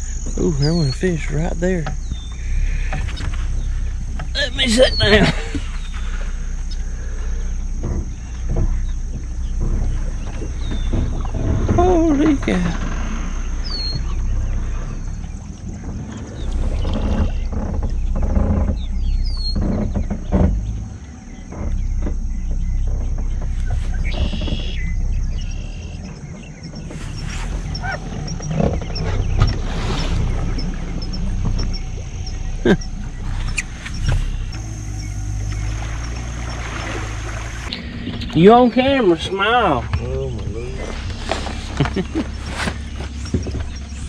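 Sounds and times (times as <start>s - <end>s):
bird chirps: 0.0s - 44.0s
outboard motor running: 0.0s - 44.0s
thin high steady whine: 0.0s - 44.0s.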